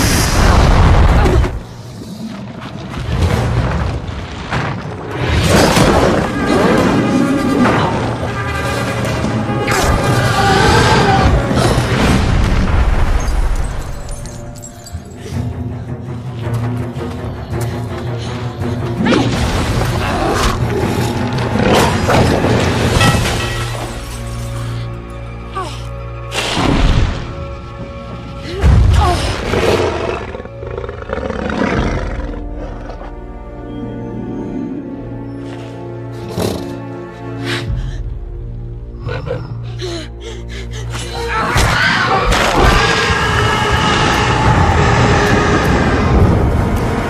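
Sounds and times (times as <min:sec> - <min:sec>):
orchestral film music: 0:00.0 - 0:47.0
dragon growling roar: 0:42.0 - 0:46.6.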